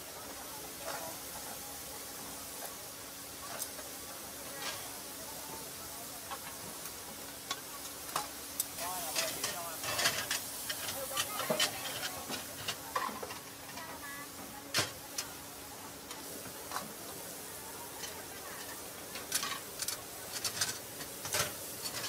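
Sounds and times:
meat sizzling on a griddle: 0.0 - 22.0
metal spatula scraping and clacking: 9.0 - 13.8, 18.0 - 22.0.

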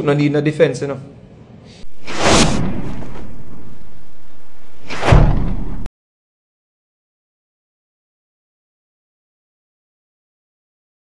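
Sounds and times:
deep boom: 1.8 - 5.9
whoosh: 1.8 - 5.9.

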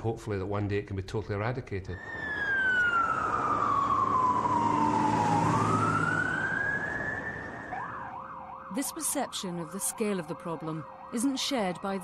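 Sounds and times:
fast warbling siren: 2.0 - 12.0
siren wailing: 2.0 - 12.0.

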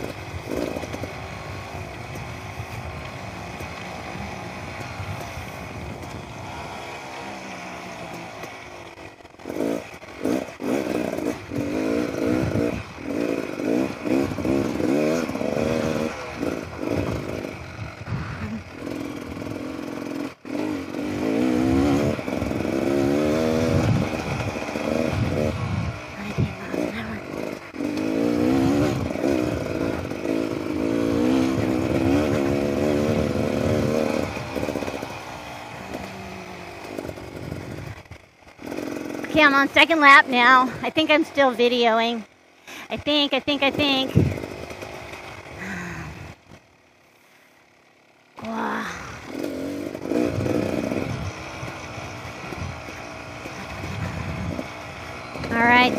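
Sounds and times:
dirt bike engine revving: 0.0 - 55.9.

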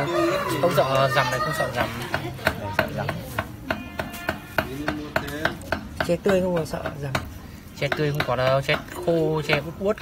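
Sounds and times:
sharp taps of food preparation: 1.7 - 10.0.

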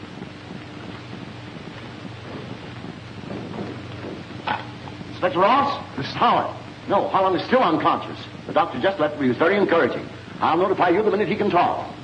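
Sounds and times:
faint low hum: 0.0 - 12.0
film soundtrack hiss: 0.0 - 12.0.

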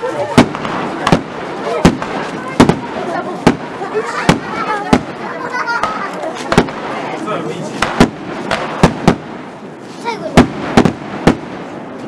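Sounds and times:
firework shells bursting: 0.3 - 7.1, 7.8 - 9.6, 10.3 - 11.8.

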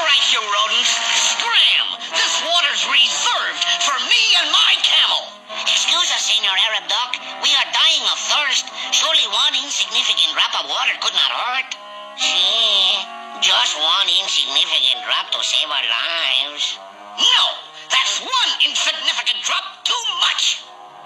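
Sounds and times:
cartoon character voice: 0.0 - 20.7
background music: 0.0 - 21.0.

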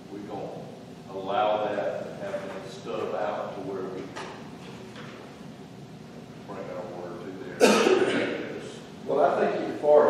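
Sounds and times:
loud cough: 7.6 - 8.4.

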